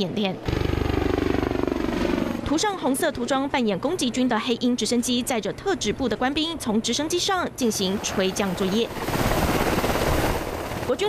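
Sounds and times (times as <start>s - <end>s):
helicopter hovering: 0.0s - 11.0s.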